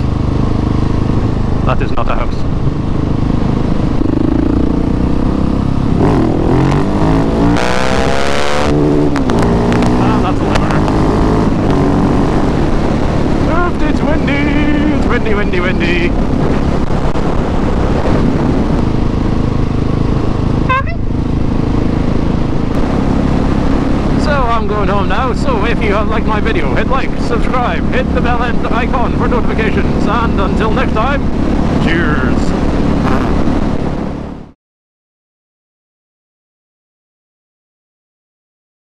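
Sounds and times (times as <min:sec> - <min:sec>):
motorcycle engine accelerating: 0:00.0 - 0:34.6.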